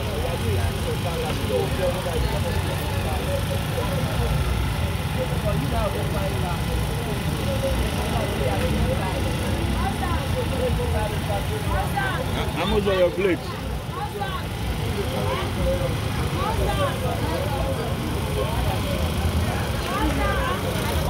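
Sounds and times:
people chatting: 0.0 - 21.0
steady low street rumble: 0.0 - 21.0.

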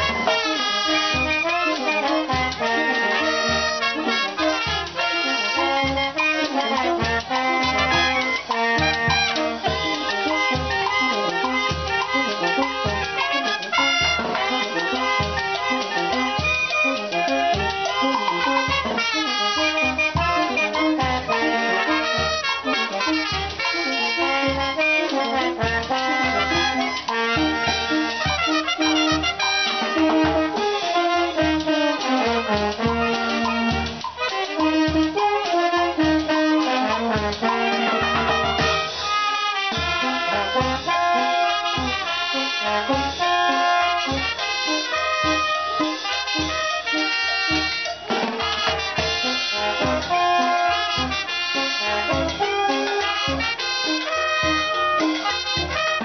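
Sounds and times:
saxophones and trumpets: 0.0 - 56.0
street brass band playing: 0.0 - 56.0
bass drum beat: 6.8 - 38.9.

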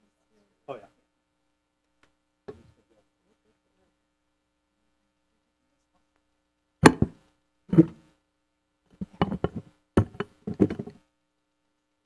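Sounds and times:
knocks and taps on a desk: 6.8 - 7.2, 9.0 - 11.0.

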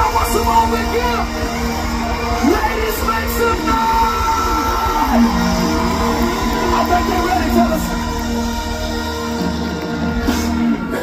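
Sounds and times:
live band music over speakers: 0.0 - 11.0.

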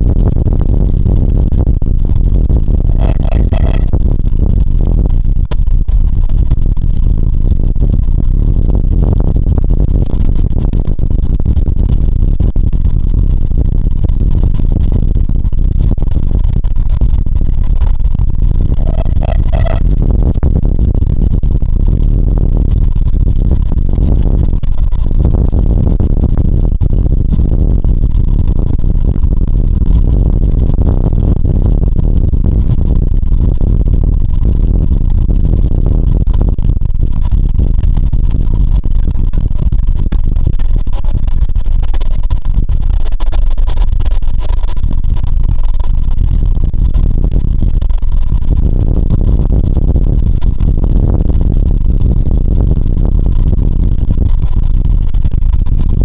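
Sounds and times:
brief high-pitched tone: 3.0 - 3.9, 18.8 - 19.8.

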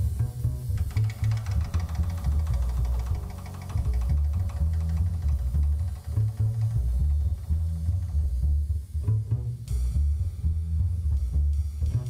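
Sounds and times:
double bass plucked pizzicato: 0.0 - 12.0.

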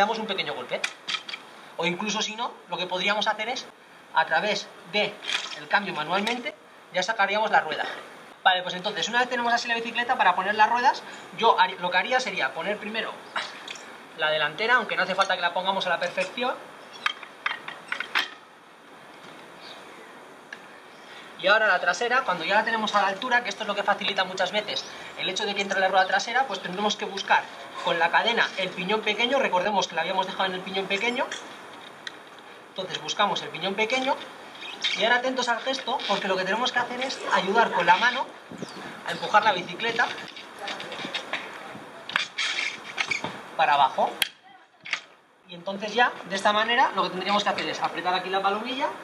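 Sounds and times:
faint background hiss: 0.0 - 49.0
bike chain clicking and rattling: 5.2 - 5.7.

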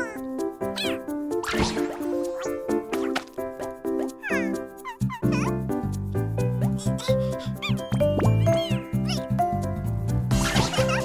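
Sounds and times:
squeaky cartoon voice: 0.0 - 1.1, 4.2 - 5.6, 6.6 - 9.4, 10.4 - 11.0
bouncy cartoon music: 0.0 - 11.0
cartoon sound effects: 7.0 - 9.3.

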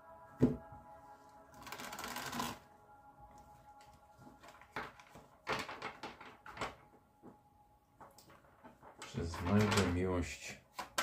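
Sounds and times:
faint background music: 0.0 - 11.0
papery card shuffle: 1.6 - 2.6, 3.8 - 6.9, 8.0 - 10.0.

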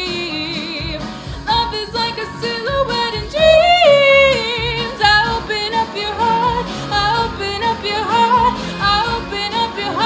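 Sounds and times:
pop backing track: 0.0 - 10.0.

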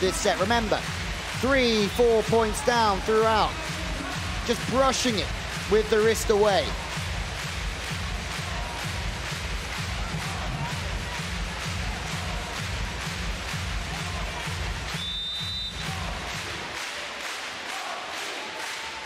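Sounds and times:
arena music with bass beat: 0.0 - 16.6
crowd noise: 0.0 - 19.0
high referee's whistle: 14.9 - 16.0.

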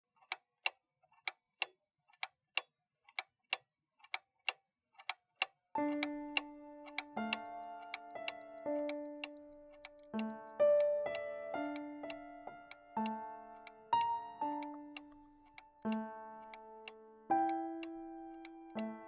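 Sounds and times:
pendulum clock ticking: 0.2 - 19.0
music of held notes: 5.8 - 19.0.

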